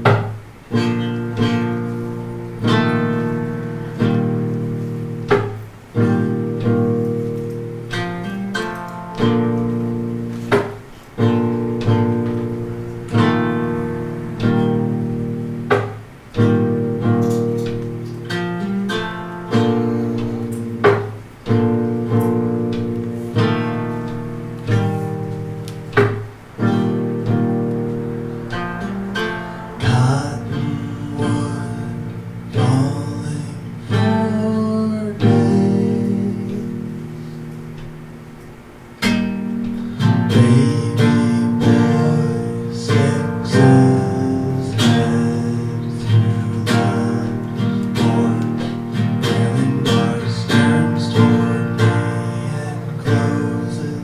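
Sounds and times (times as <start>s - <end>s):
acoustic guitar chords: 0.0s - 54.0s.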